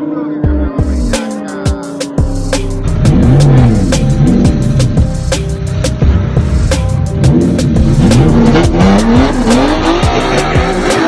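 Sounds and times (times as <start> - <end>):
background music with beat: 0.0 - 11.0
car engines revving: 2.7 - 11.0.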